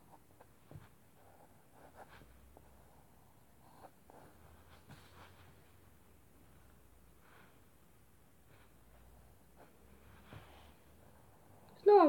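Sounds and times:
faint scratches or rustles: 0.0s - 11.7s.

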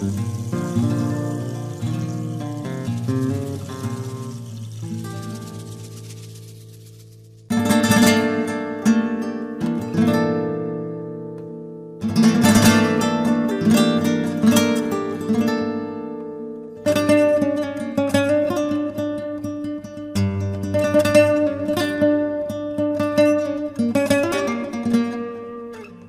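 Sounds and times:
plucked guitar notes: 0.0s - 5.8s
acoustic guitar strummed chords: 0.0s - 6.4s.

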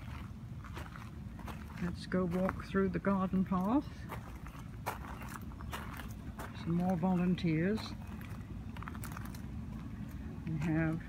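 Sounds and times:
footsteps crunching on gravel: 0.0s - 11.0s.

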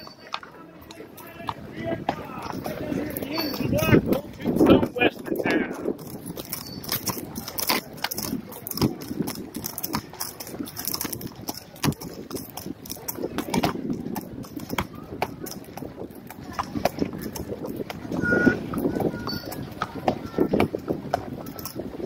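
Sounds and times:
horse hooves clopping on dirt: 0.0s - 22.0s
indistinct voices: 0.0s - 22.0s.

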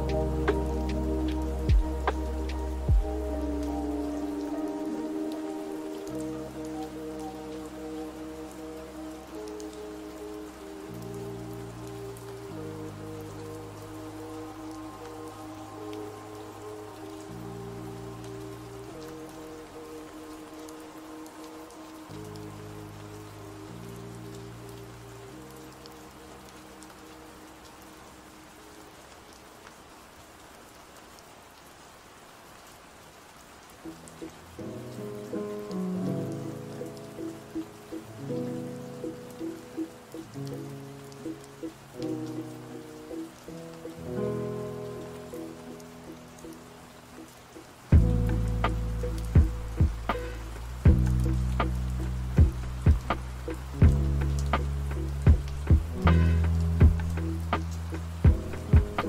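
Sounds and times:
slow lofi music: 0.0s - 59.0s
steady rain: 0.0s - 59.0s.

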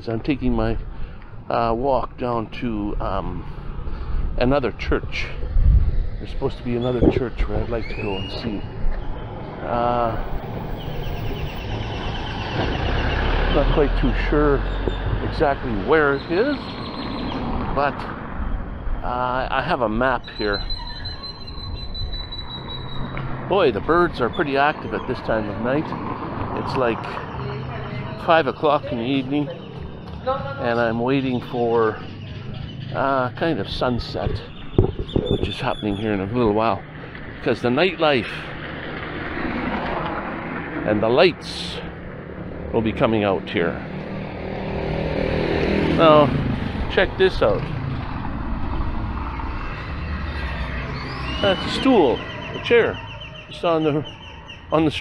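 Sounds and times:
town street ambience: 0.0s - 55.0s
birds calling: 5.8s - 42.6s, 43.3s - 55.0s.

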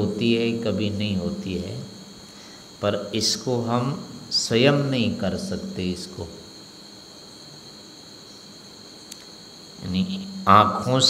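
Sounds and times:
low hiss: 0.0s - 11.0s
small click: 9.0s - 9.3s.

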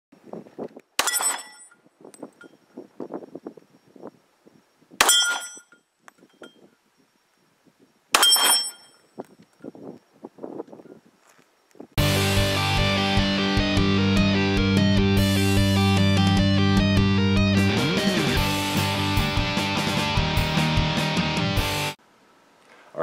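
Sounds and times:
metallic ring of steel target: 1.0s - 1.8s, 5.0s - 5.8s, 8.2s - 9.1s.

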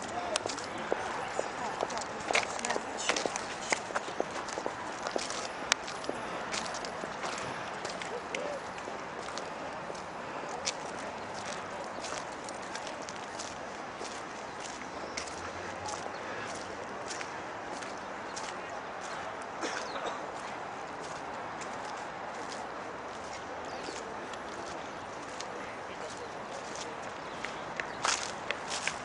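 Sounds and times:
footsteps on wet paving: 0.0s - 29.0s.

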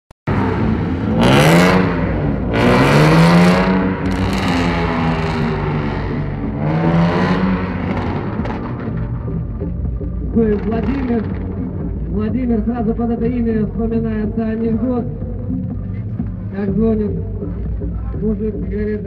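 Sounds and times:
car engines revving: 0.3s - 19.0s.

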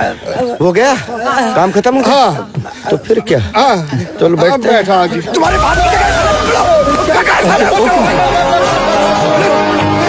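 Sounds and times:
men shouting and chattering: 0.0s - 10.0s
background film music: 5.4s - 10.0s.

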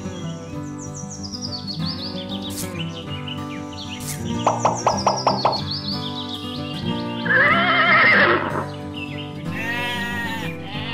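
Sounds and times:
background music: 0.0s - 10.9s
bleat-like animal call: 7.2s - 8.7s, 9.5s - 10.9s
horse whinny: 7.2s - 8.7s.

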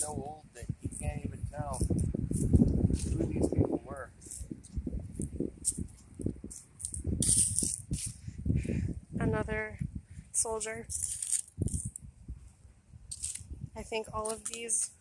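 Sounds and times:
footsteps through grass and dry leaves: 1.8s - 8.2s.

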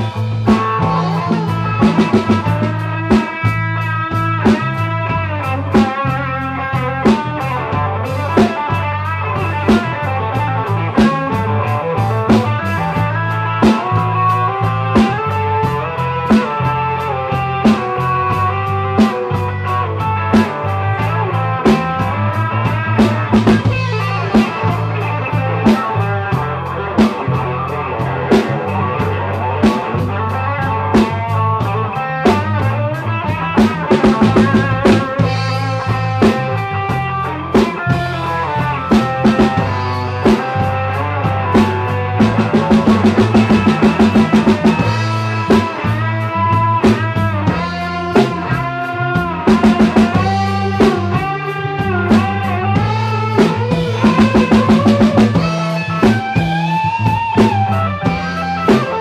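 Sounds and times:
bass guitar: 0.0s - 59.0s
drum kit beat: 0.0s - 59.0s
electric guitar lead: 0.0s - 59.0s.

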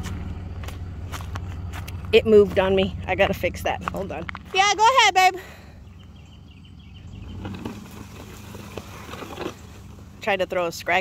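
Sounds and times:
pickup engine running: 0.0s - 11.0s
wood scraping over gravel: 7.2s - 10.3s.

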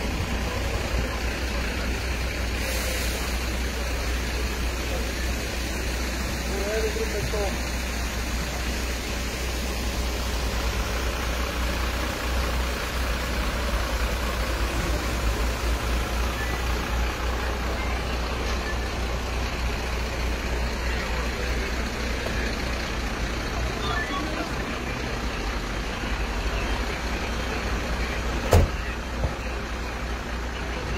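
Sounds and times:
faint voices: 0.0s - 30.9s
vehicle engine running: 0.0s - 30.9s.

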